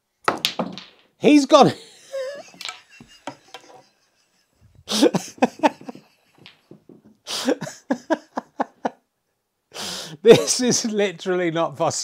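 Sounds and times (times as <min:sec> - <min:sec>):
man laughing: 0:01.6 - 0:06.3, 0:07.3 - 0:09.0, 0:10.3 - 0:10.7
faint breaths: 0:09.7 - 0:10.2.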